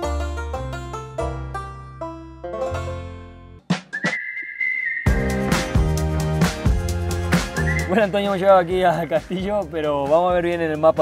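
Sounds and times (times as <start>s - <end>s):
plucked-string tune with bass: 0.0s - 3.6s
rising whistled note: 3.8s - 6.0s, 7.4s - 8.0s.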